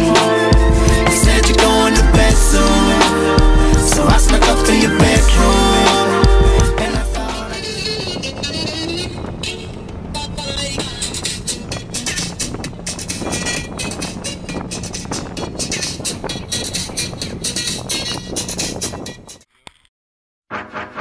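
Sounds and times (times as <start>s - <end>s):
music: 0.0s - 9.6s, 10.6s - 19.4s, 20.5s - 21.0s
bus engine humming: 0.0s - 19.4s
passengers' voices: 6.8s - 13.6s.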